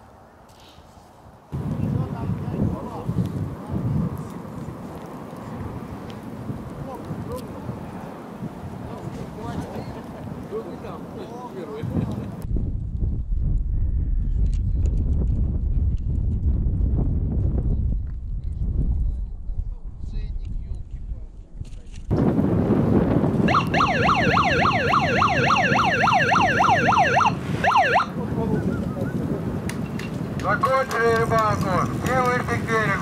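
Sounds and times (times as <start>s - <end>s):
wind buffeting microphone: 1.2s - 33.0s
distant voices: 23.5s - 33.0s.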